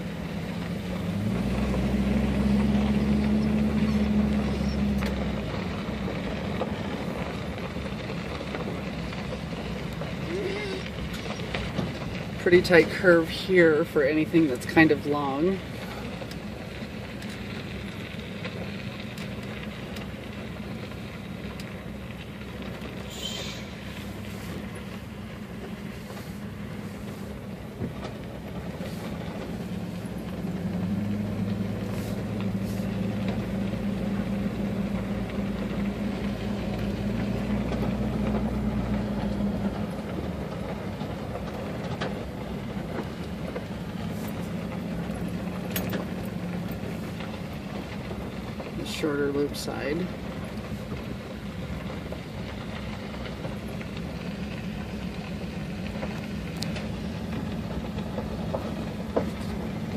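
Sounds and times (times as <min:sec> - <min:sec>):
car engine and tyres on gravel: 0:00.0 - 0:59.9.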